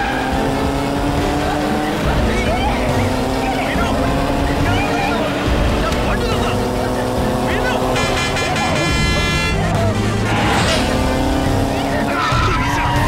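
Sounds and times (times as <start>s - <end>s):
motorcycle engine: 0.0s - 13.0s
suv engine: 0.0s - 13.0s.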